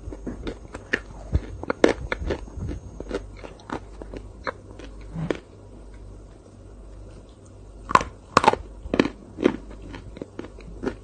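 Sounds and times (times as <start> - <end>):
person chewing and biting: 0.0 - 6.0, 7.0 - 11.0.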